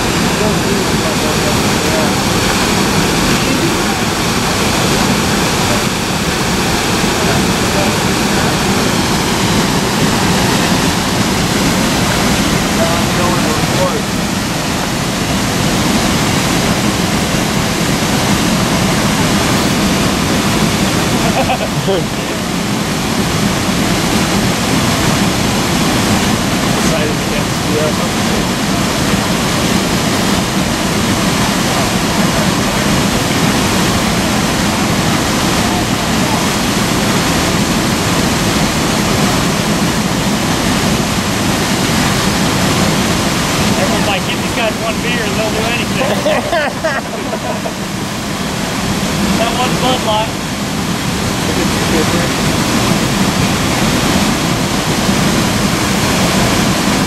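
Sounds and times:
waterfall rushing: 0:00.0 - 0:57.0.

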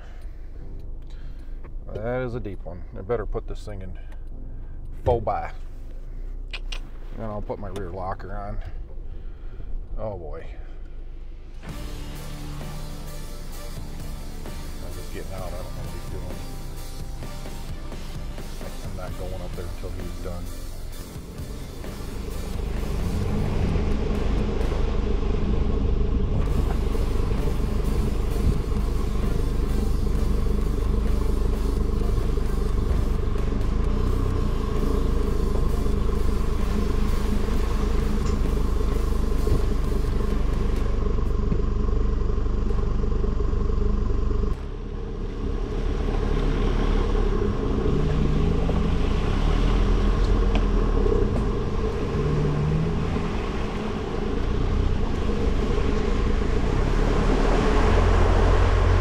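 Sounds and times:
off-road vehicle engine running: 0:00.0 - 0:59.0.

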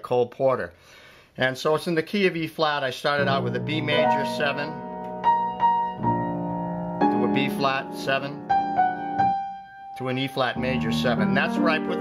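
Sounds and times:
upright piano chords: 0:03.2 - 0:12.0.

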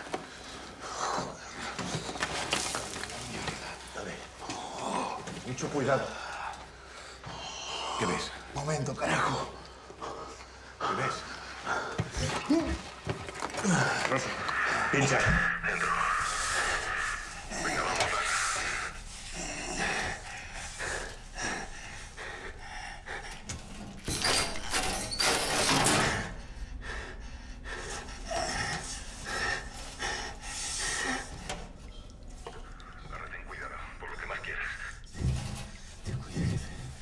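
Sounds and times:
rustling and scraping: 0:01.5 - 0:04.4, 0:35.0 - 0:37.0
man breathing heavily: 0:16.0 - 0:24.8, 0:26.2 - 0:31.9
muffled voices: 0:32.8 - 0:36.8.

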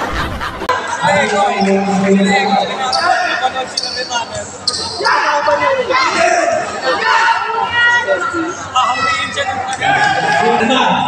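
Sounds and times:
murmur of voices: 0:00.0 - 0:11.0
basketball shoes squeaking: 0:02.3 - 0:05.2.

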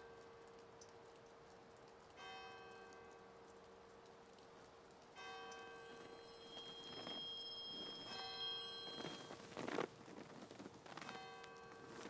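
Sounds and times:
high twinkling chimes: 0:05.2 - 0:09.8
bell strokes ringing: 0:05.5 - 0:09.8.

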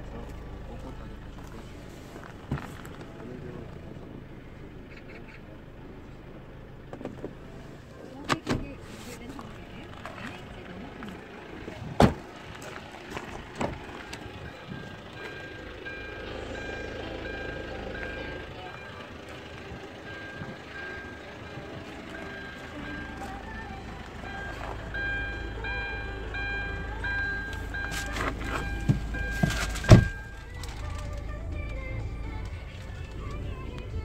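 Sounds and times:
high electronic warning beep: 0:14.3 - 0:30.5.

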